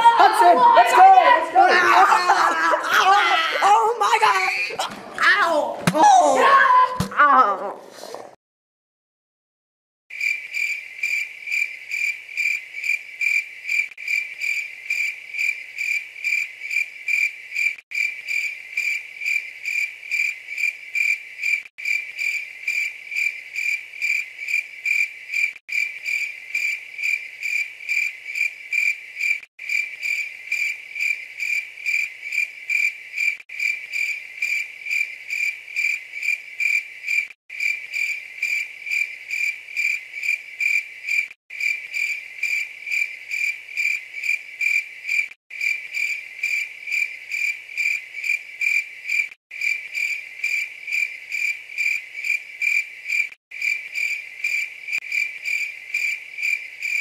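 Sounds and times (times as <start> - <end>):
crickets chirping: 10.1 - 57.0.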